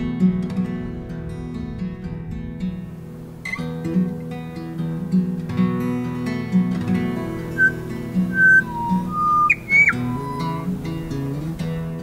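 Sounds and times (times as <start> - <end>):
acoustic guitar music: 0.0 - 12.0
whistled notes: 7.6 - 10.8.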